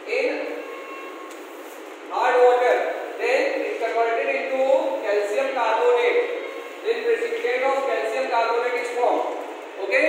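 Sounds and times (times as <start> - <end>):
man speaking: 0.0 - 1.0, 2.1 - 10.0.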